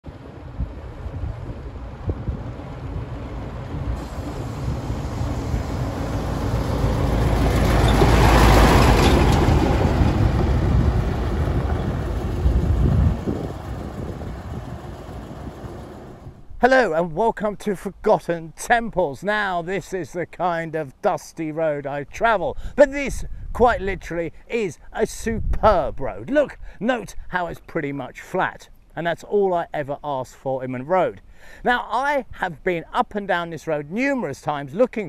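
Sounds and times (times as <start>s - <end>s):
dump truck driving past: 0.1s - 16.5s.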